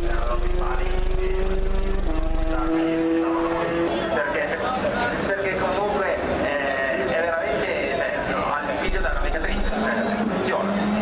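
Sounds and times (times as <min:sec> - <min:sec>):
rally car engine: 0:00.0 - 0:11.0.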